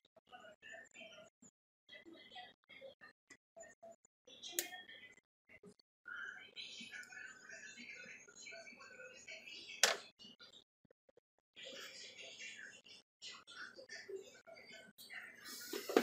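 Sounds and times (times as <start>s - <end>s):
faint indistinct voice: 0.2s - 10.6s, 11.6s - 16.0s.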